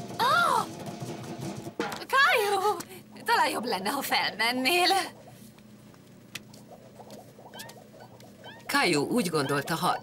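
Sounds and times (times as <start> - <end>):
cartoon pattering footsteps: 4.0 - 10.0.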